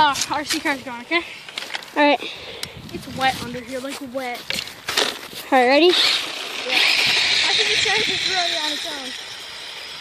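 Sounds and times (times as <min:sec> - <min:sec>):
rc car motor whirring: 0:05.8 - 0:10.0.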